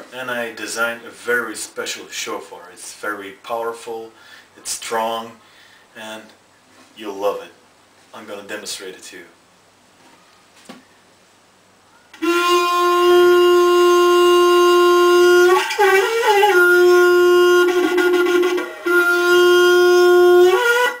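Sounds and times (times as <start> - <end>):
watering can blown like a horn: 12.2 - 21.0.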